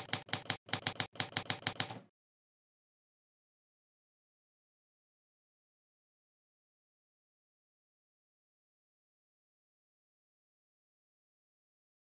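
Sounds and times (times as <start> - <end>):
typewriter keys clacking: 0.0 - 2.0.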